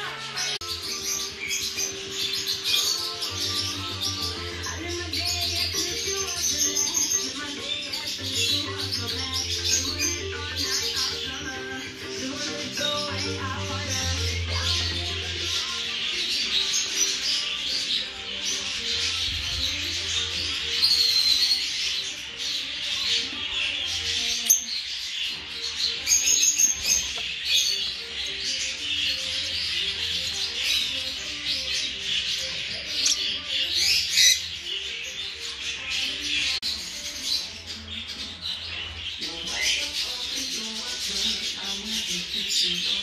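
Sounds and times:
music playing: 0:00.0 - 0:43.0
parrotlets chirping: 0:00.0 - 0:43.0.

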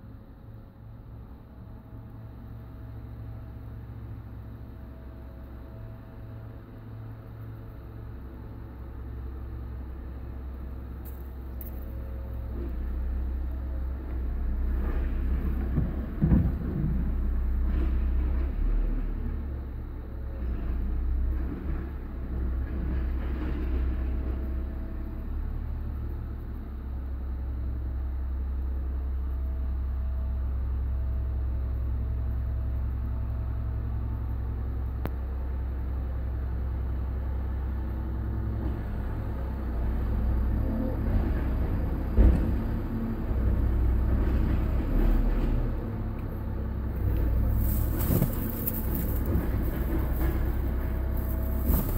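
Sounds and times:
car engine idling: 0:46.2 - 0:51.9.

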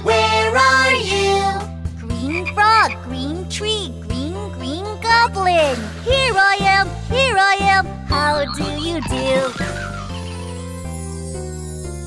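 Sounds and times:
children's song backing: 0:00.0 - 0:10.1
cartoon frog croaks: 0:02.1 - 0:03.1, 0:08.1 - 0:10.4
person singing: 0:08.1 - 0:09.7.

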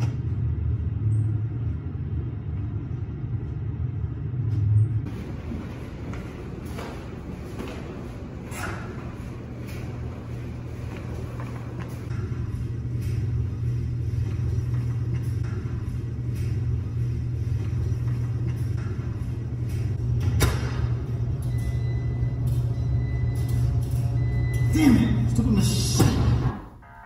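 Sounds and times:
low rumble: 0:00.0 - 0:26.6.

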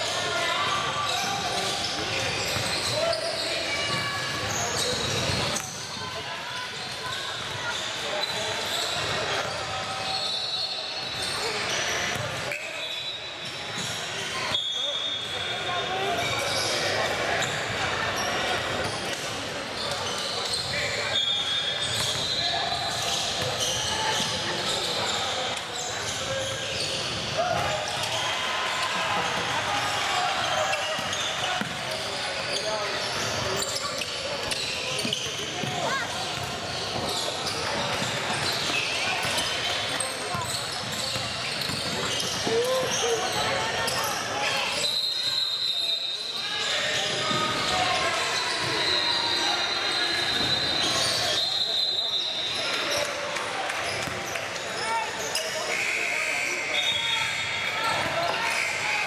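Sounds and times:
players and spectators voices: 0:00.0 - 0:59.0.

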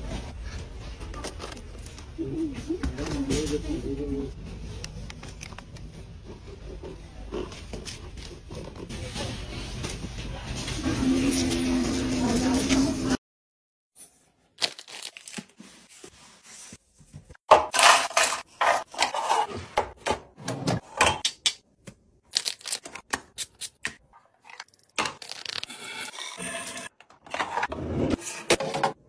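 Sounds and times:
small items set into bins: 0:14.6 - 0:16.0, 0:17.6 - 0:19.3.

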